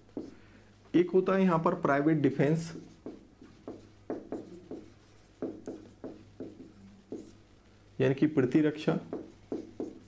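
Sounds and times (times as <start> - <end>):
marker pen writing on whiteboard: 0.0 - 0.4, 2.4 - 7.7, 8.5 - 10.0.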